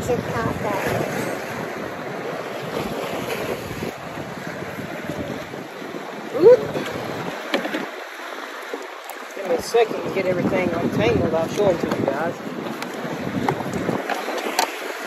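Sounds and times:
wind on microphone: 0:00.0 - 0:08.1, 0:08.7 - 0:15.0
water lapping around boat: 0:00.0 - 0:15.0.

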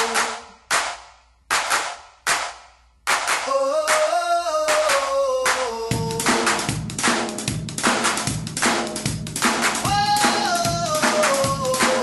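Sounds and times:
sharp percussion hits in a song: 0:00.0 - 0:12.0.

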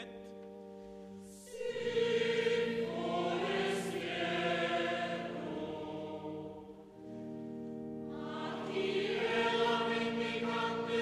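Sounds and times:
mixed choir singing: 0:01.3 - 0:07.0, 0:08.0 - 0:11.0.

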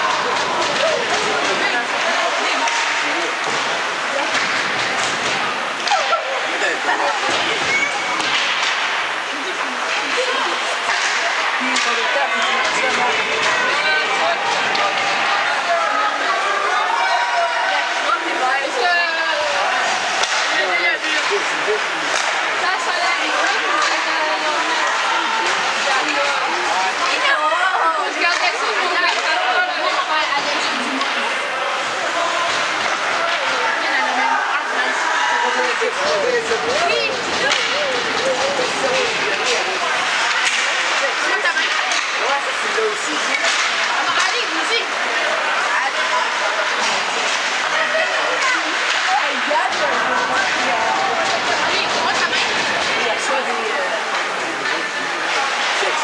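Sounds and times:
spectators chattering: 0:00.0 - 0:56.0.

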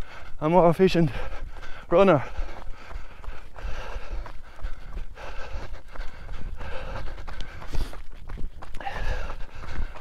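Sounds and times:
jogging footsteps: 0:00.0 - 0:10.0
man breathing: 0:00.0 - 0:10.0.

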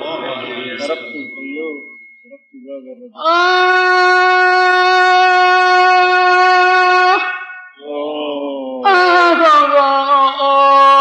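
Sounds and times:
man singing religious chant: 0:00.0 - 0:01.9.

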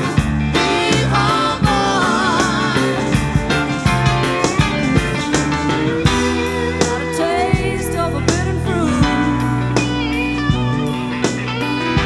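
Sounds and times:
blues-rock band playing: 0:00.0 - 0:12.0
electric slide guitar: 0:00.0 - 0:12.0.

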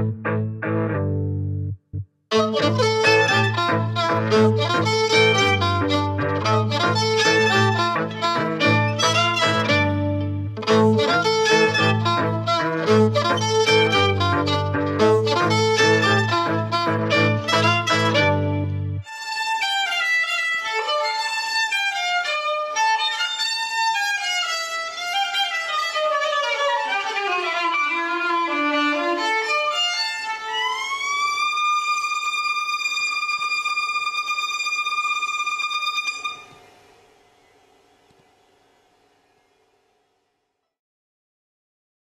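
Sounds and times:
violin playing: 0:00.0 - 0:01.3, 0:02.3 - 0:36.8.

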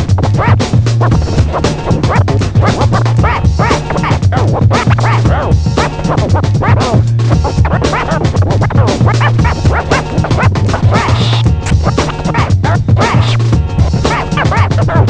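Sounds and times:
beat with bass notes: 0:00.0 - 0:15.0
turntable scratching: 0:00.0 - 0:15.0.

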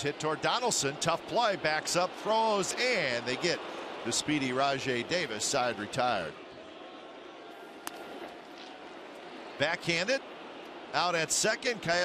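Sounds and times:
crowd murmur: 0:01.3 - 0:12.0.

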